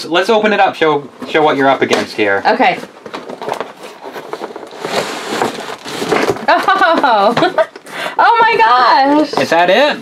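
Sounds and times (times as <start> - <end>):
cardboard box scraping and rustling: 2.5 - 7.0.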